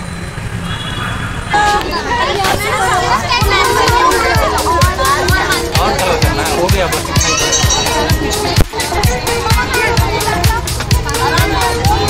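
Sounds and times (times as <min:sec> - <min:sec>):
children chattering and calling out: 0:01.2 - 0:12.0
adult voices: 0:01.5 - 0:12.0
background music with low beat: 0:03.4 - 0:12.0.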